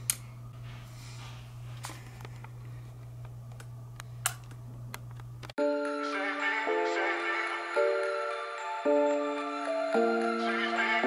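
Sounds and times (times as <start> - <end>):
steady low hum: 0.0 - 5.6
music: 5.6 - 11.0.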